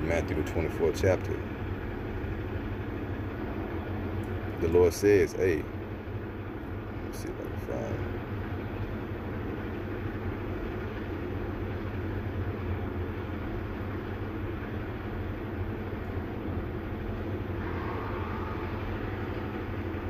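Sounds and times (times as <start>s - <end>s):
steady low rumble: 0.0s - 20.0s.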